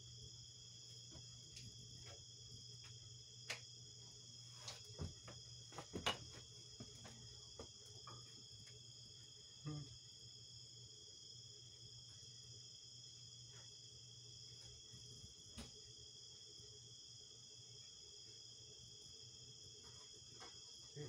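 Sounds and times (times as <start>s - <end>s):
crickets chirping: 0.0s - 21.0s.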